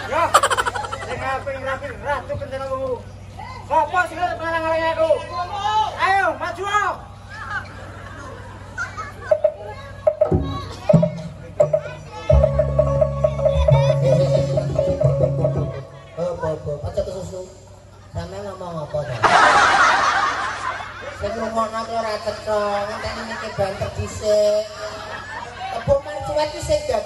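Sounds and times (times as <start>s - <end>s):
audience laughter: 0.0s - 1.3s, 19.0s - 21.5s, 22.6s - 25.9s
background chatter of voices: 0.0s - 19.2s
low steady hum: 0.0s - 27.0s.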